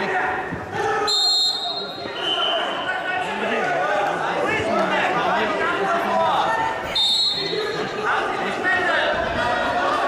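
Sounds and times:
voices calling out in sports hall: 0:00.0 - 0:10.0
referee's whistle: 0:01.1 - 0:02.9, 0:06.9 - 0:07.6.

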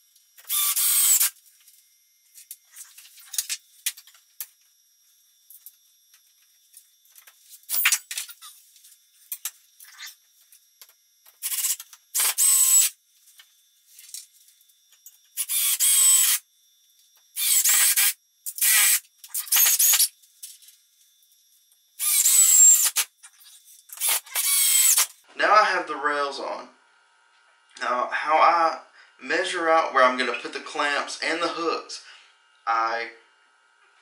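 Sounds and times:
cordless drill driving screws: 0:00.5 - 0:01.3, 0:11.4 - 0:12.9, 0:15.4 - 0:16.4, 0:17.4 - 0:20.1, 0:22.0 - 0:23.0, 0:24.0 - 0:25.1.

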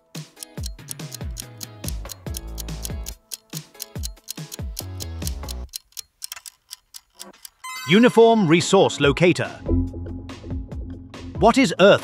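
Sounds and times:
timer ticking: 0:00.1 - 0:08.1.

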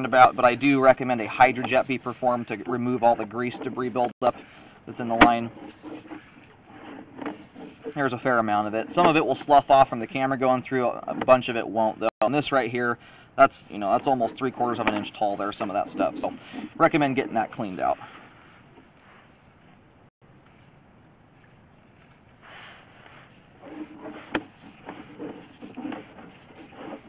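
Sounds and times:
man speaking: 0:00.0 - 0:05.5, 0:07.9 - 0:18.0.

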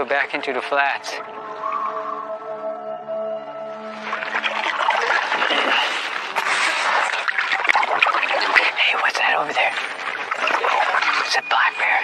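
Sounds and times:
sustained music notes: 0:00.0 - 0:07.5
canoe paddle splashing water: 0:03.9 - 0:11.4.

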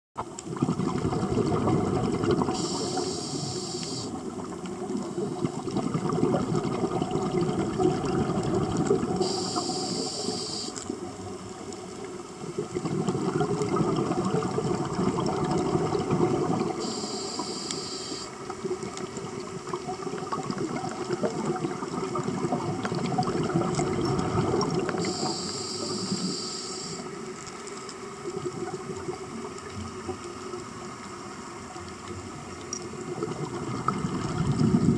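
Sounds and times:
bubbling exhalation: 0:00.5 - 0:03.1, 0:04.8 - 0:09.4, 0:12.5 - 0:17.0, 0:19.6 - 0:25.4, 0:33.2 - 0:34.9
hissing regulator inhales: 0:02.5 - 0:04.2, 0:09.2 - 0:10.8, 0:16.8 - 0:18.4, 0:25.0 - 0:27.1.

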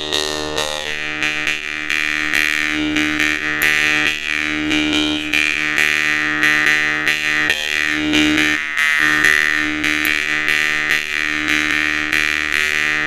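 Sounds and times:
jaw harp buzzing drone: 0:00.0 - 0:13.0.

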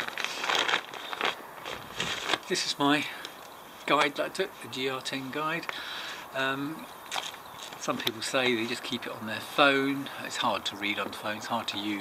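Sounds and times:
backpack fabric crinkling: 0:00.0 - 0:02.7.

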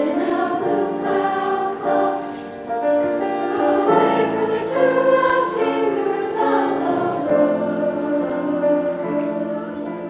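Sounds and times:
choir singing chords: 0:00.0 - 0:10.0.

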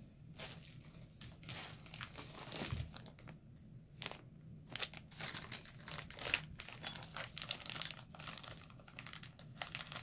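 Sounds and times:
plastic packaging crinkling: 0:00.4 - 0:10.0.

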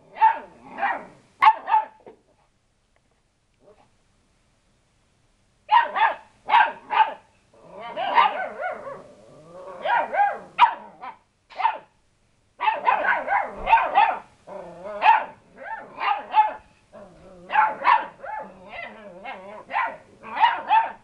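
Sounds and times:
puppies barking: 0:05.7 - 0:07.2, 0:07.9 - 0:09.0, 0:09.8 - 0:11.9, 0:12.6 - 0:14.3, 0:15.0 - 0:16.6, 0:17.5 - 0:21.0.

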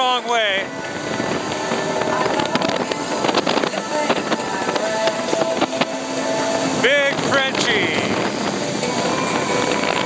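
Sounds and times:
watercraft engine running: 0:00.0 - 0:10.0.

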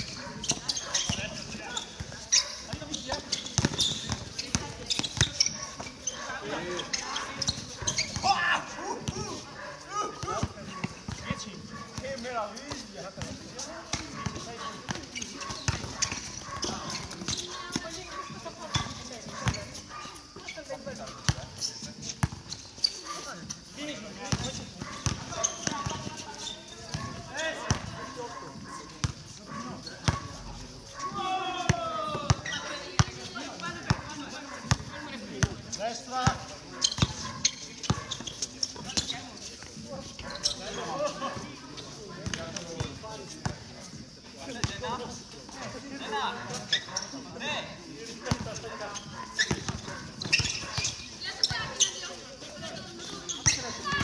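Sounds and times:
basketball dribbled on hard court: 0:00.4 - 0:05.6, 0:13.9 - 0:19.6, 0:24.3 - 0:27.9, 0:33.8 - 0:35.6, 0:49.4 - 0:51.0
players calling out: 0:00.4 - 0:12.2, 0:31.0 - 0:34.3.

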